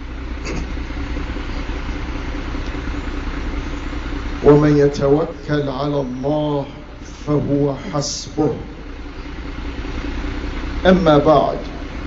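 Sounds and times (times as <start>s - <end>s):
low engine-like hum with hiss: 0.0s - 12.0s
man speaking: 4.4s - 8.8s, 10.8s - 11.7s.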